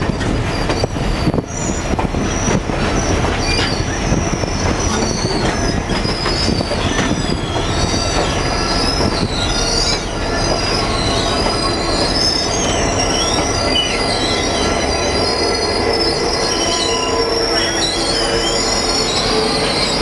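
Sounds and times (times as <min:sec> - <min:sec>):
train rumbling: 0:00.0 - 0:20.0
train wheels squealing on rails: 0:00.0 - 0:20.0.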